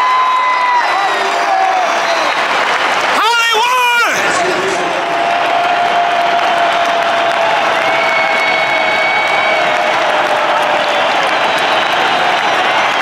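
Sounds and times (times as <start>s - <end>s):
stadium crowd cheering and clapping: 0.0s - 13.0s.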